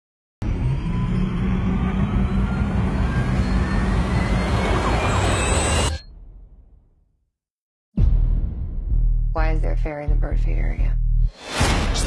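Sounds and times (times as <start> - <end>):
thin rising tone: 0.4 - 6.2.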